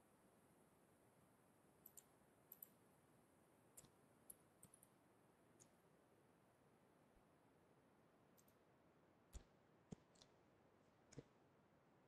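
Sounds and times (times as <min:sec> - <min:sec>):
faint sharp clicks: 0:01.8 - 0:02.8, 0:08.4 - 0:08.6.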